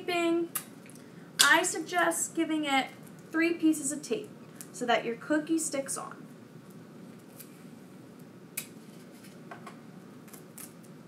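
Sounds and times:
sticky tape pulled and torn: 10.2 - 10.9.

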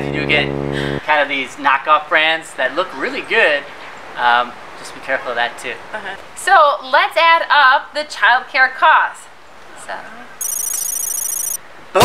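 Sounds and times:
high-pitched electronic ringing: 10.4 - 11.6.

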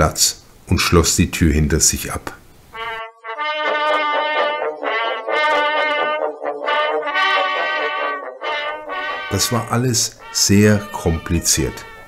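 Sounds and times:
slow instrumental melody: 2.8 - 12.0.

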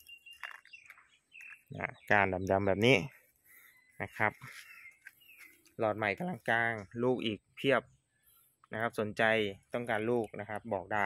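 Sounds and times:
faint bird chirps: 0.0 - 11.0
man's voice: 8.8 - 11.0.

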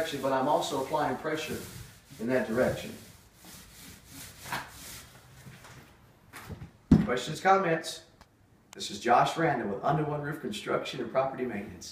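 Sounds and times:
paint roller rasping on wall: 0.0 - 5.2.

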